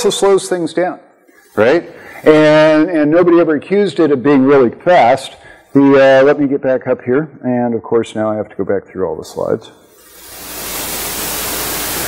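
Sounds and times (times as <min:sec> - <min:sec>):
recording hiss: 0:00.0 - 0:06.5, 0:09.3 - 0:12.0.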